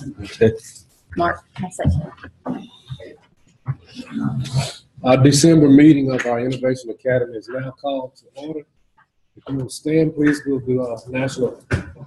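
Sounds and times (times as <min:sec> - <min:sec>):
person murmuring: 0:00.0 - 0:01.3, 0:03.9 - 0:08.0.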